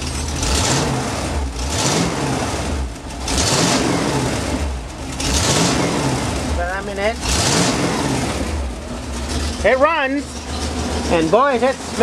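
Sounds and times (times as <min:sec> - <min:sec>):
pickup engine revving: 0:00.0 - 0:12.0.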